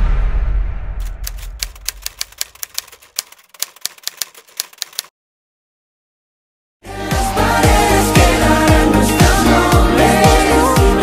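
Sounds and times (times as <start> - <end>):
sharp uneven clicks: 1.0 - 5.1.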